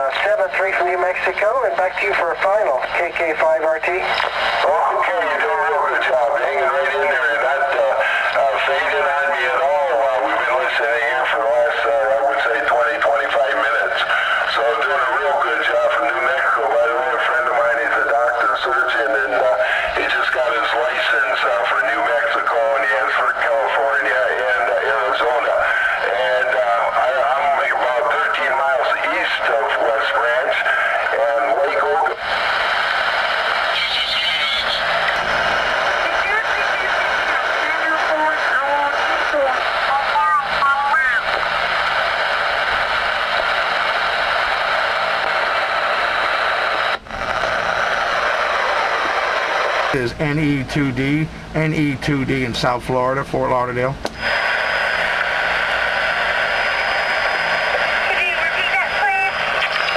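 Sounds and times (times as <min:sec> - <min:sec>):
garbled mistuned radio speech: 0:00.0 - 0:59.9
radio band noise hiss: 0:00.0 - 0:59.9
warbling radio voices: 0:00.0 - 0:59.9.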